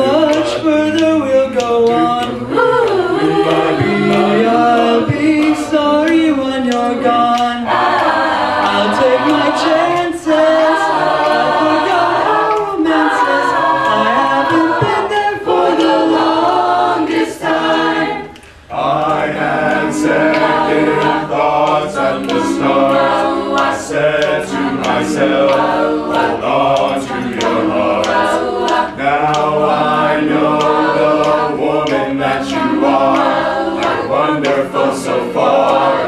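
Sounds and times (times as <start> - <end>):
a cappella group singing: 0.0 - 36.0.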